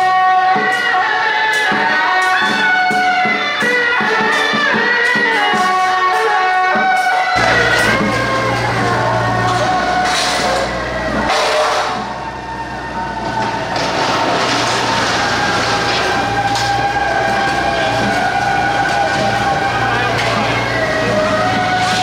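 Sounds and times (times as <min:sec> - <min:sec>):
procession music with held notes: 0:00.0 - 0:22.0
street noise: 0:00.0 - 0:22.0
voices: 0:00.0 - 0:22.0.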